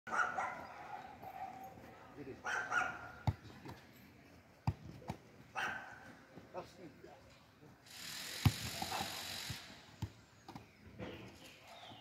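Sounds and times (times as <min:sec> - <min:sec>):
dog barking: 0:00.1 - 0:03.2, 0:05.5 - 0:06.1.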